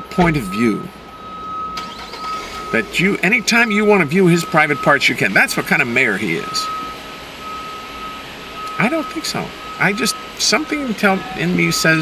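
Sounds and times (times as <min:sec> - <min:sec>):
high-pitched electronic tone: 0:00.0 - 0:08.2.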